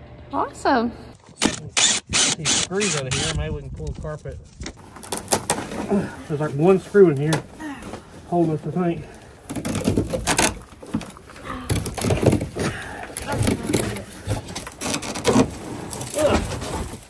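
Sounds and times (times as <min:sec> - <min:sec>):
carpet scraping and tearing: 0:13.3 - 0:17.0.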